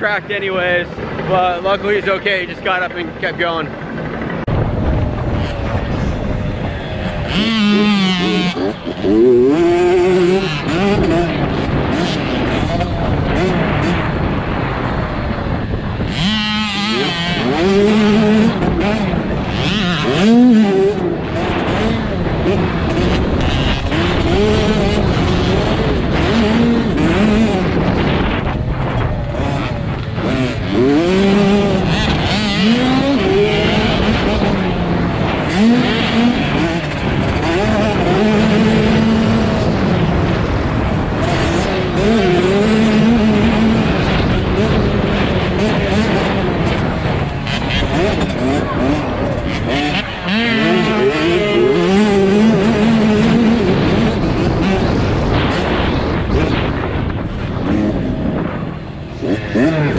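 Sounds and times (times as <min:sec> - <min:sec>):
dirt bike engine revving: 0:00.0 - 0:59.9
wind noise: 0:00.0 - 0:59.9.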